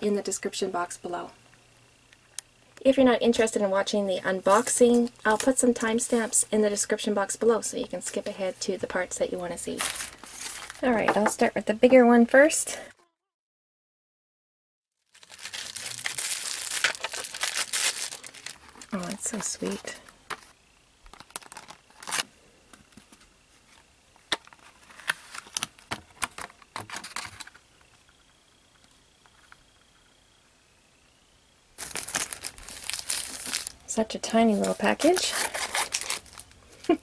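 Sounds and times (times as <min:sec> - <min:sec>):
plastic packaging crinkling: 0:09.7 - 0:11.0, 0:15.0 - 0:27.6, 0:31.8 - 0:37.0.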